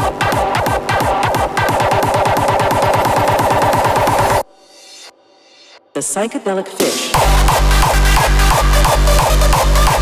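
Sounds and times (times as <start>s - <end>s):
distorted kick drums: 6.8s - 10.0s.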